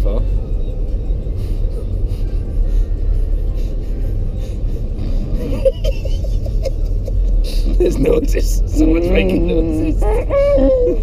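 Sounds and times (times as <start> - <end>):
road rumble inside car: 0.0 - 11.0.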